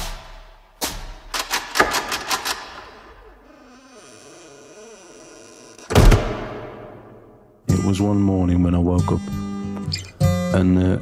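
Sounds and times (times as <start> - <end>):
door thud: 4.2 - 7.3.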